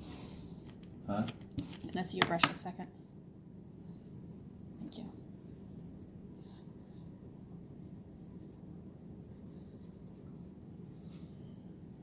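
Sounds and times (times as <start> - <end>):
steady low hum: 0.0 - 12.0
paintbrush scratchy strokes: 7.8 - 12.0.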